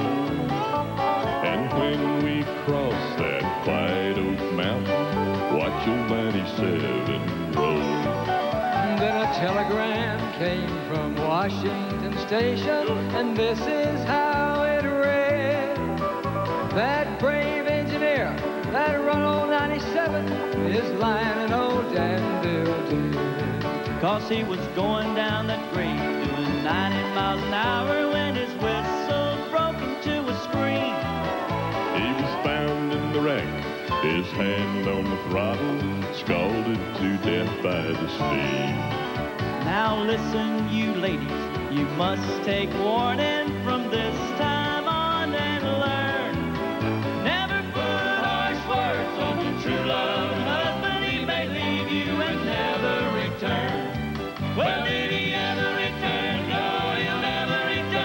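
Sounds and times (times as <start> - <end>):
country band playing: 0.0 - 58.0
male vocal quartet singing in harmony: 0.0 - 58.0.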